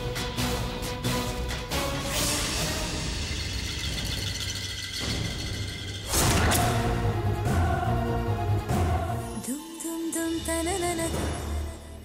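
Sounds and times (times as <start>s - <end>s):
dramatic background score: 0.0s - 12.0s.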